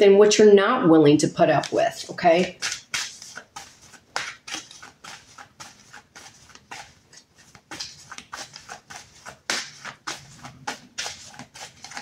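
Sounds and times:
cards being shuffled: 0:02.4 - 0:12.0.

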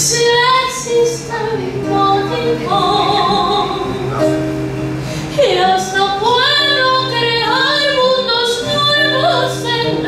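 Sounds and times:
woman singing with vibrato: 0:00.0 - 0:04.4, 0:05.3 - 0:10.0
acoustic guitar chords: 0:00.0 - 0:10.0.

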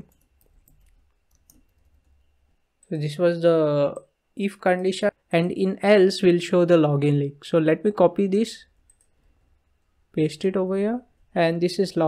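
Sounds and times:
person speaking: 0:10.1 - 0:12.0.

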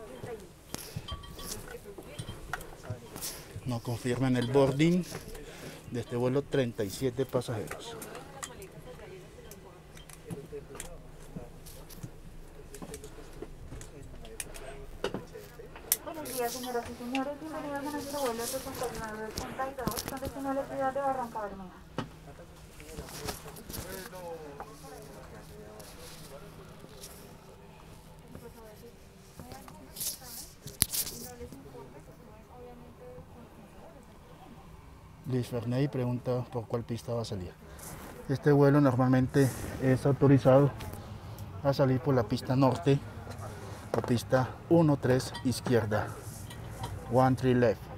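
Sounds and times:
murmur of passengers' voices: 0:00.0 - 0:47.9
steady low hum: 0:00.0 - 0:47.9.

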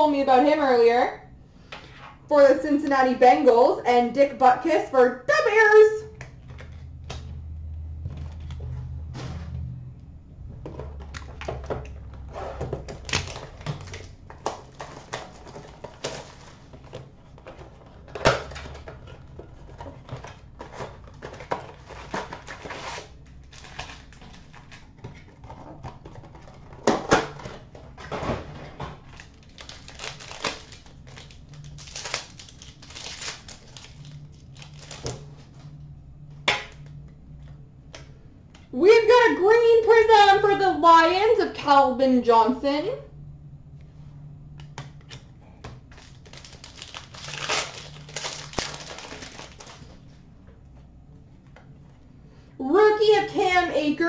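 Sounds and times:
wrappers crinkling and tearing: 0:29.0 - 0:35.5, 0:45.9 - 0:50.0.

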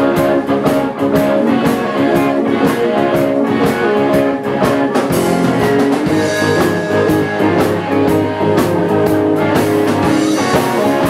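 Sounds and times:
drum kit beat: 0:00.0 - 0:11.0
electric guitar: 0:00.0 - 0:11.0.

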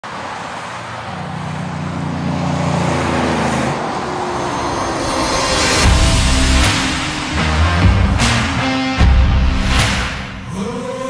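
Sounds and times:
road traffic: 0:00.0 - 0:11.0
rushing sound: 0:01.2 - 0:10.7.

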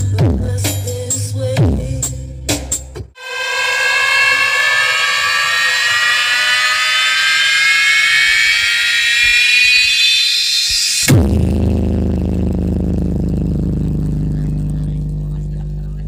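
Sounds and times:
synthesized rising tone sweep: 0:03.2 - 0:11.1.

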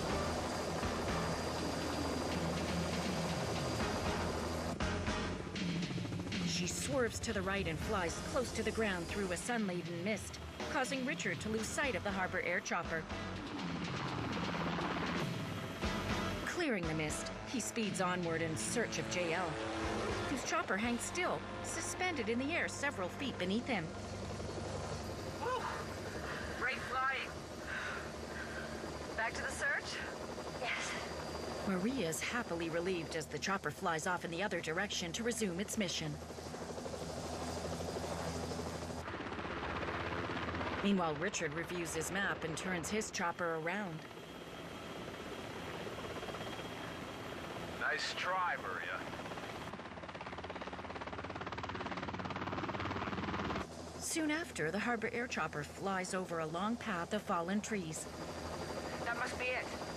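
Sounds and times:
helicopter hovering: 0:00.0 - 0:59.9.

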